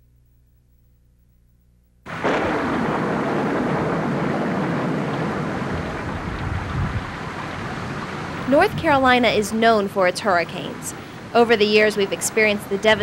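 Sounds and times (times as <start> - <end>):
rain: 2.1 - 13.0
storm wind: 2.1 - 13.0.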